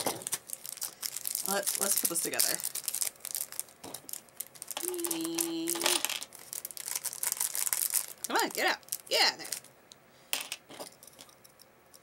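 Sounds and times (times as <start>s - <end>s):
plastic pieces clicking: 4.7s - 8.3s
person humming a note: 4.8s - 6.0s.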